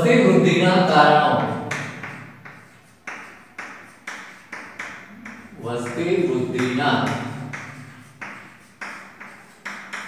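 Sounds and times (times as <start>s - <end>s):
chalk tapping on blackboard: 0.3s - 10.0s.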